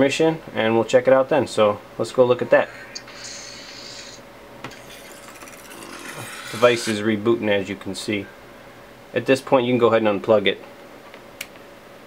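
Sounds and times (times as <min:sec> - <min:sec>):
rasping rub: 0:04.8 - 0:07.1.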